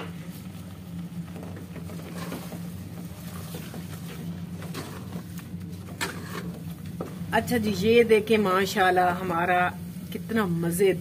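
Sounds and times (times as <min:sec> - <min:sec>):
steady low hum: 0:00.0 - 0:11.0
wooden spoon scraping pot: 0:05.8 - 0:07.1.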